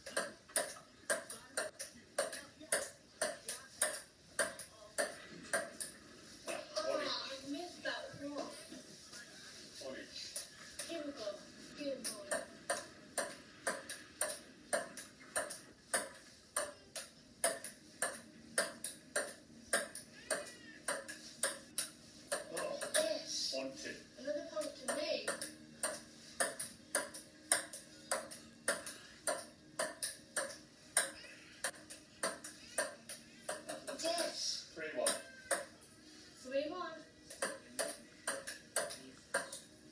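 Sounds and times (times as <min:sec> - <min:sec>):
ping-pong ball hits: 0:00.0 - 0:05.9, 0:12.0 - 0:23.1, 0:24.8 - 0:34.0, 0:37.3 - 0:39.7.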